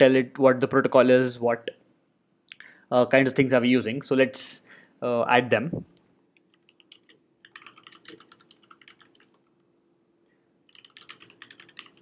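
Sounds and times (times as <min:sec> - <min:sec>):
typing on a computer keyboard: 0:06.4 - 0:09.6, 0:10.7 - 0:12.0.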